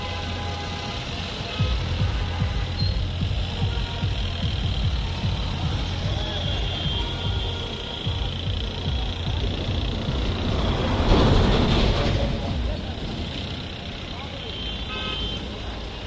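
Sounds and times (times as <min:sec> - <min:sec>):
vehicles driving past: 0:00.0 - 0:16.0.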